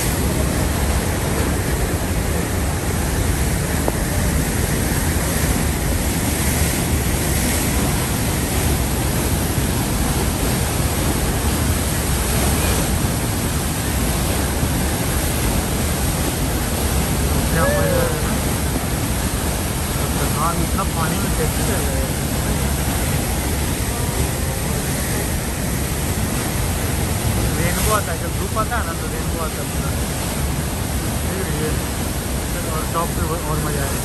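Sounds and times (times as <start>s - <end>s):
waterfall roaring: 0.0s - 34.0s.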